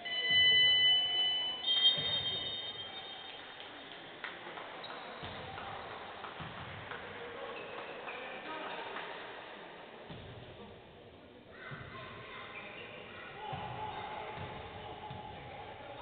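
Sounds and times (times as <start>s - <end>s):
faint court noise: 0.0s - 16.0s
referee's whistle blasts: 1.6s - 3.4s.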